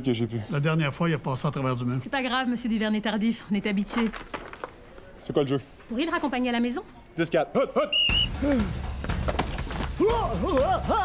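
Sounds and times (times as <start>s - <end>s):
quick footfalls: 9.0s - 10.1s.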